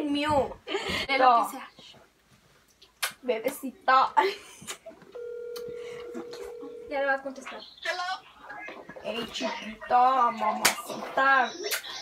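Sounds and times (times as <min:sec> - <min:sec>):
telephone ringback tone: 0:05.2 - 0:07.1.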